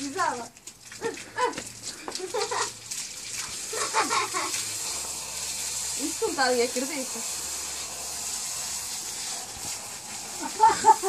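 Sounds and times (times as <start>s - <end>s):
water from hose splashing: 0.0s - 11.0s.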